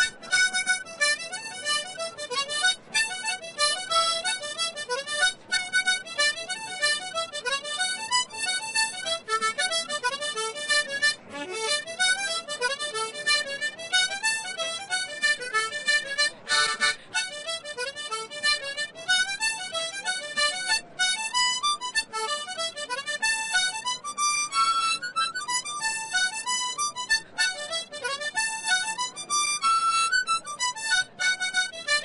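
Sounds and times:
harmonica playing folk tune: 0.0 - 32.0.

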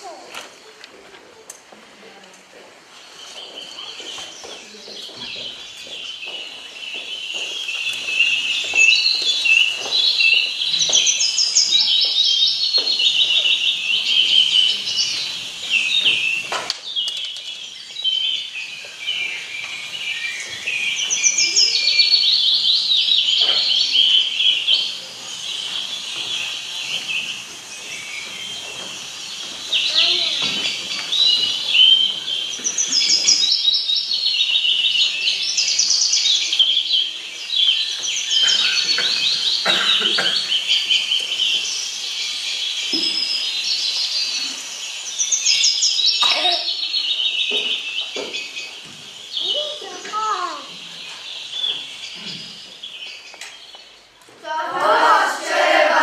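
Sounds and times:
songbirds chirping over loudspeakers: 2.9 - 56.0.

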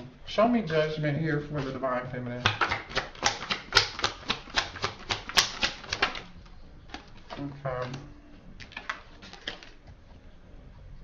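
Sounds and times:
cards being shuffled: 2.4 - 10.2.

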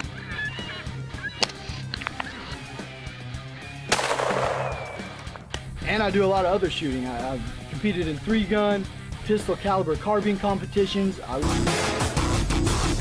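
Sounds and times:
background music: 0.0 - 13.0
rifle shot: 3.9 - 5.1.

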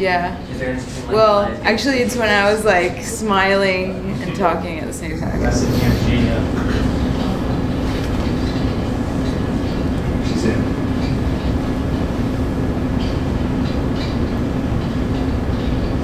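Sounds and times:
faint voices murmuring: 0.0 - 11.3
constant hum: 0.0 - 16.0
low rumble: 4.6 - 9.2.

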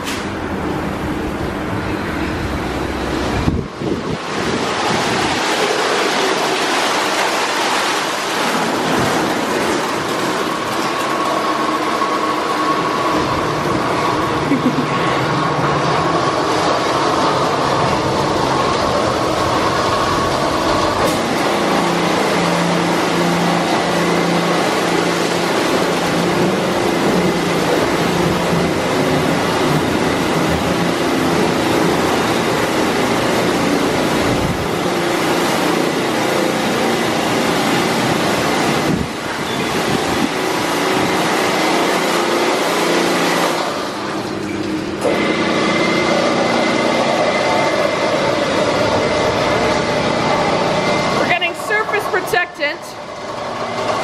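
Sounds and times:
steady machine hum: 0.0 - 54.0
car wash brushes spinning: 2.1 - 52.2
water spray beating on car: 3.7 - 12.7, 20.5 - 48.8.

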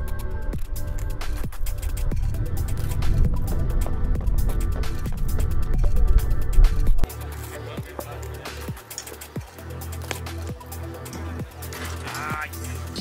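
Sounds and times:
electronic music with deep bass: 0.0 - 13.0.

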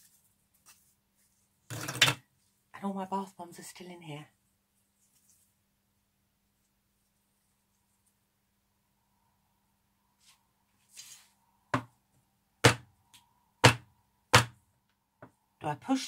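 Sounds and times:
faint rustle: 4.7 - 5.7.

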